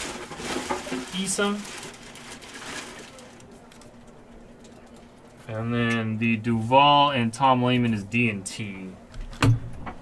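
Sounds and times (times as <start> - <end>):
faint steady hum: 0.0 - 10.0
light room noise: 0.0 - 10.0.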